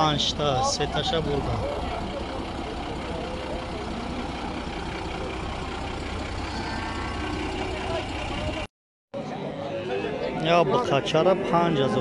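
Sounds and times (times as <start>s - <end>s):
low market rumble: 0.0s - 8.7s.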